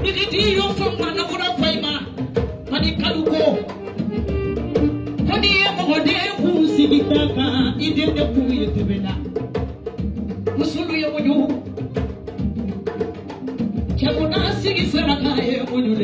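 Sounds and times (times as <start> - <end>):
live music with drums: 0.0 - 16.0.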